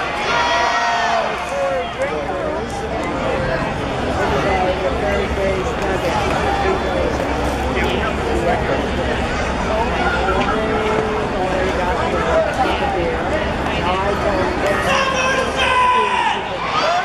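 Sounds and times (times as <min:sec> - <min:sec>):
crowd babble: 0:00.0 - 0:17.0.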